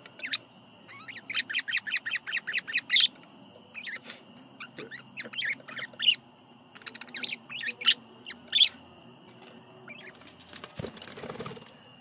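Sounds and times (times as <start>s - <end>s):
budgerigars chirping: 0.0s - 8.8s, 9.9s - 10.2s.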